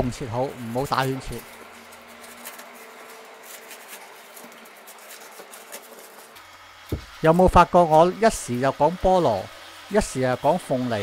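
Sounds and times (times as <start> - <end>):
knife scraping pineapple rind: 0.0 - 8.4.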